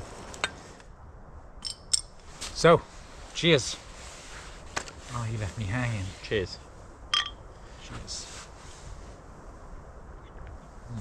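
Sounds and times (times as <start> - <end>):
light clicks and clink: 1.6 - 2.3.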